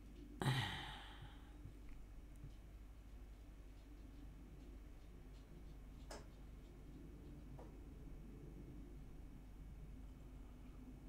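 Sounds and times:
woman sighing: 0.4s - 1.5s.

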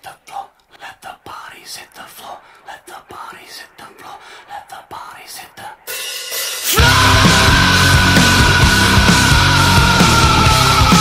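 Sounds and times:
person whispering: 0.0s - 5.9s.

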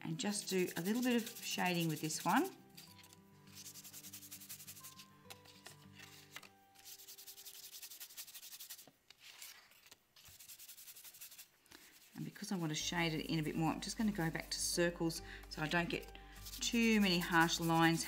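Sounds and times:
brush scrubbing on card: 0.3s - 12.8s, 16.4s - 18.0s.

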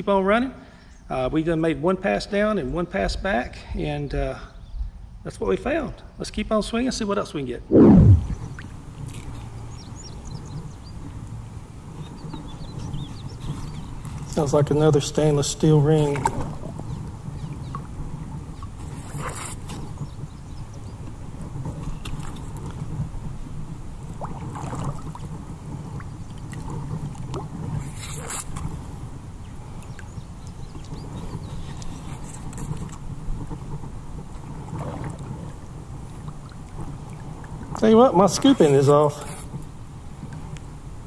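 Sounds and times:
water splashes: 24.1s - 25.4s.

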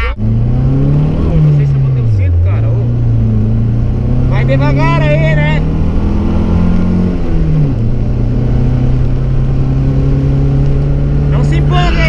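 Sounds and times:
car engine under throttle: 0.0s - 12.0s.

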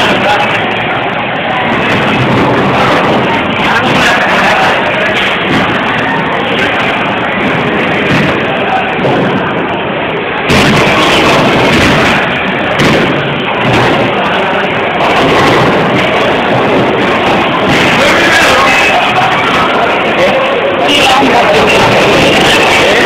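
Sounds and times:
muddled voices: 0.0s - 23.0s.

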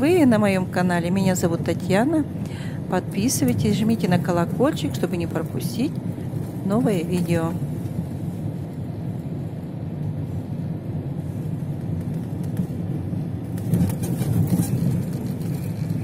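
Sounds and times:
car engine and tyre rumble: 0.2s - 16.0s.

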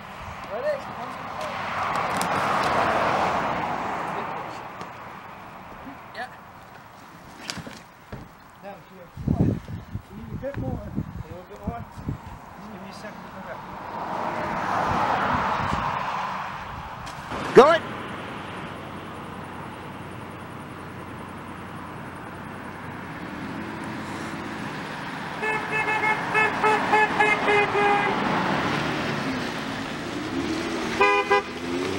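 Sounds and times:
truck passing by: 0.0s - 7.2s, 11.8s - 31.9s
truck horn short toots: 25.4s - 28.1s, 31.0s - 31.6s.

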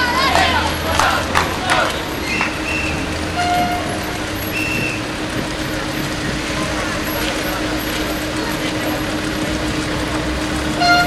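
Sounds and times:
car engine hum: 0.0s - 11.0s
street background noise: 0.0s - 11.0s.

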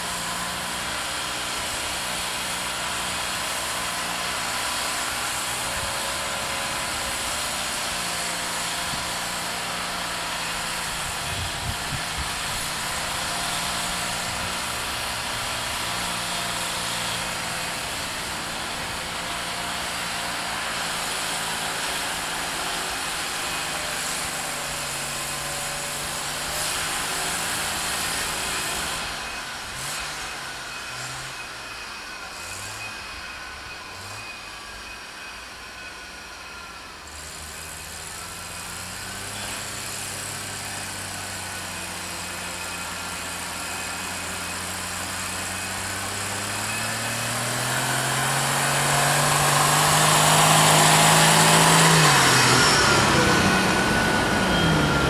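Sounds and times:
vehicle engines revving: 0.0s - 34.9s, 37.0s - 55.0s.

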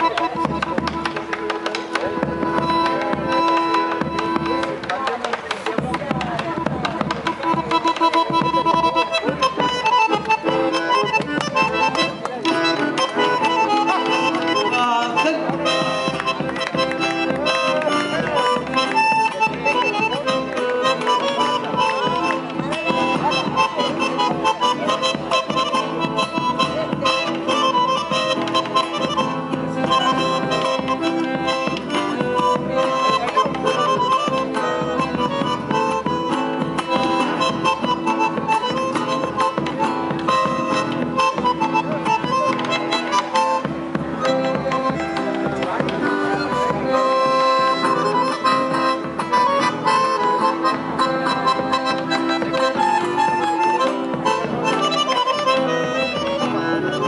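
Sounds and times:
acoustic guitar: 0.0s - 57.0s
bandoneon melody: 0.0s - 57.0s
drum beating rhythm: 0.0s - 57.0s.

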